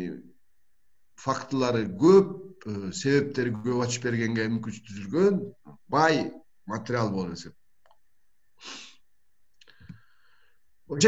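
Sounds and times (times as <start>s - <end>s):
man speaking: 1.2s - 7.6s.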